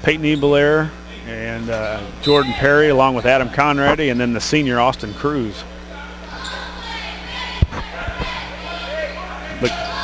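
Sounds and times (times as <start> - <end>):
crowd murmur: 5.1 - 10.0.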